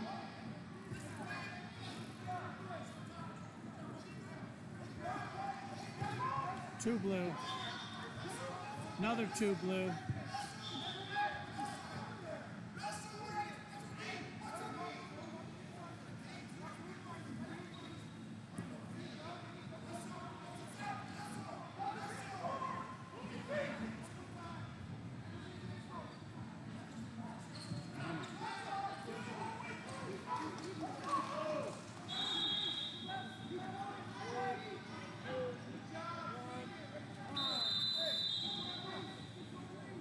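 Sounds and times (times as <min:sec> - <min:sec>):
voices echoing in large hall: 0:00.0 - 0:40.0.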